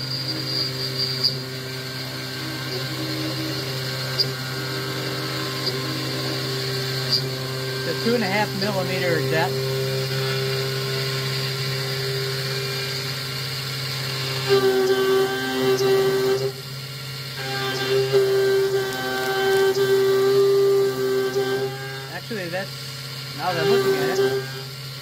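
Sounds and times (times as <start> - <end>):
milling machine cutting metal: 0.0 - 25.0.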